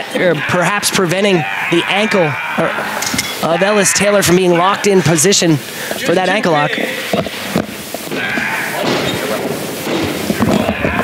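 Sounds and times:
crowd room noise: 0.0 - 11.0.

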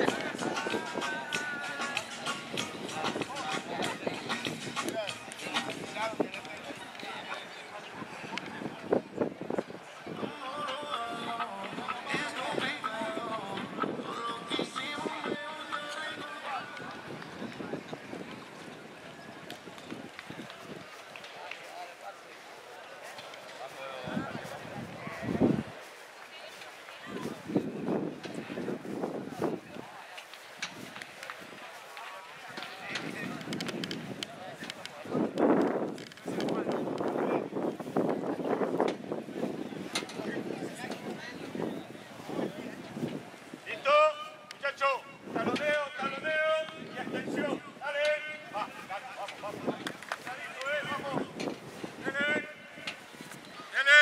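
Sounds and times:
footballers calling out: 43.6 - 54.0.

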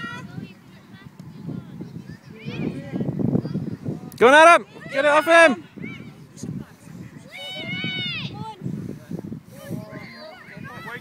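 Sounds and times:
faint outdoor field noise: 0.0 - 11.0.

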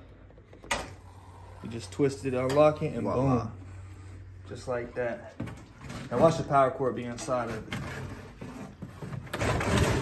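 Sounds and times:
cardboard scraping against plastic: 7.2 - 10.0.

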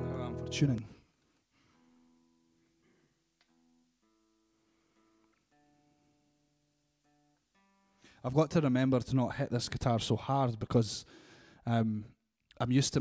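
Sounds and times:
acoustic guitar strings plucked: 0.0 - 0.9.

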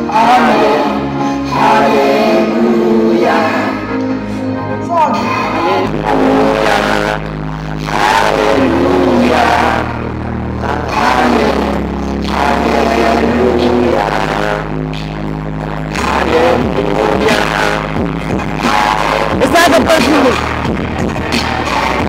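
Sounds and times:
man singing into a microphone: 0.0 - 4.0, 4.7 - 14.8, 15.8 - 20.5
loud backing track over speakers: 0.0 - 22.0.

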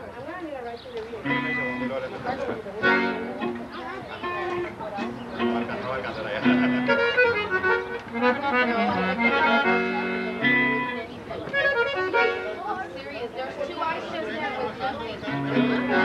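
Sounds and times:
bass notes: 1.2 - 2.2, 2.8 - 12.6
strummed guitar: 1.2 - 2.2, 2.8 - 12.7, 15.2 - 16.0
button accordion melody: 1.2 - 13.2, 14.4 - 16.0.

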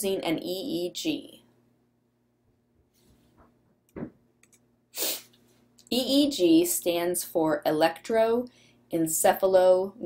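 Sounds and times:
woman speaking: 0.0 - 1.4, 5.9 - 10.0
woman's sharp intake of breath: 5.0 - 5.3.

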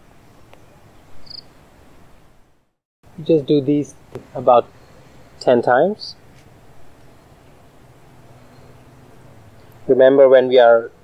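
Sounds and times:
outdoor background hiss: 0.0 - 11.0
soft rush of noise: 0.0 - 11.0
insect chirp: 1.0 - 1.7, 8.2 - 9.8.

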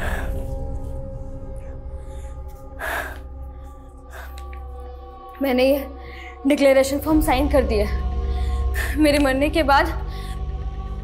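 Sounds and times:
sustained music drone: 0.0 - 11.0.

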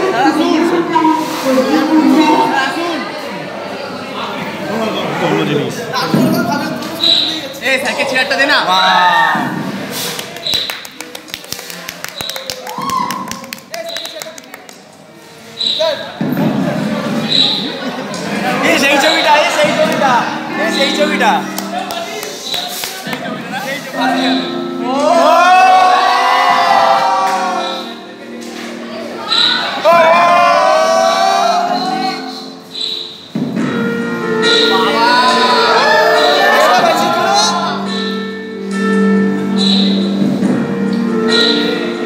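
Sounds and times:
song over speakers in hall: 0.0 - 3.3, 16.6 - 42.0.

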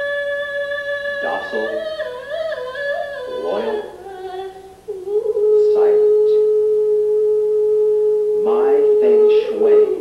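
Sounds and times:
voice holding long note: 1.0 - 10.0.

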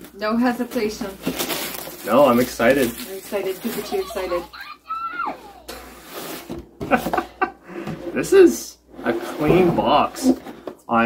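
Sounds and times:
cardboard sleeve scraping: 1.2 - 4.6, 5.2 - 6.6.

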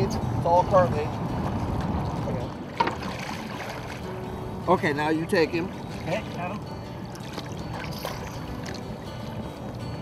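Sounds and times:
water lapping against boat hull: 0.3 - 10.0.

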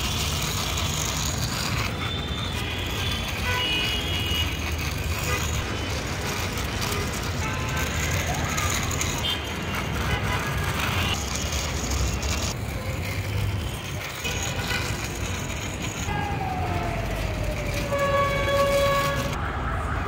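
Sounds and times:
toy wheels scraping on brick: 0.0 - 19.4
outdoor noise: 0.0 - 20.0.

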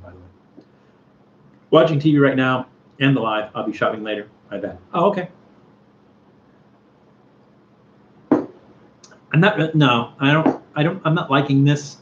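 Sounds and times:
glass set down on table: 8.3 - 8.6.

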